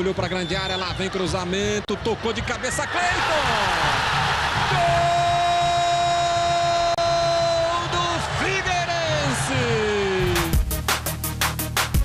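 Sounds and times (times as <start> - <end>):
man shouting: 4.7 - 7.8.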